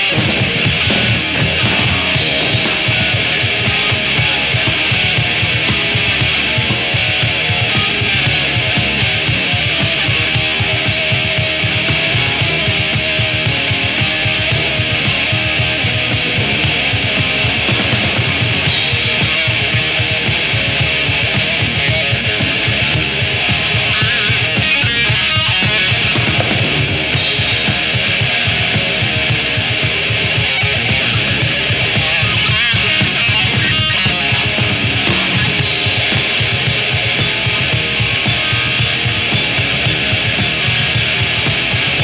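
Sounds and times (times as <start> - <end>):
drum kit fast beat: 0.0 - 42.0
electric guitar: 0.0 - 42.0.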